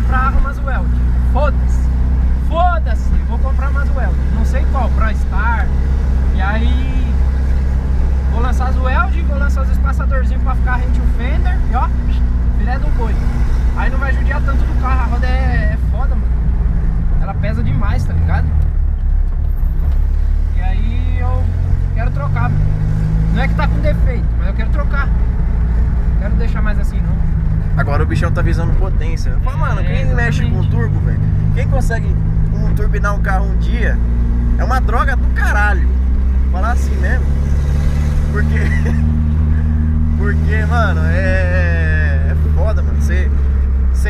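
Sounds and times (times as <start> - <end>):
car engine droning inside cabin: 0.0 - 44.0.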